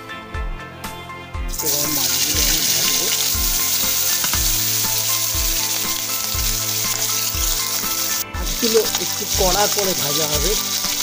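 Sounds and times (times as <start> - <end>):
background music with low beat: 0.0 - 11.0
fish sizzling in hot oil: 1.5 - 11.0.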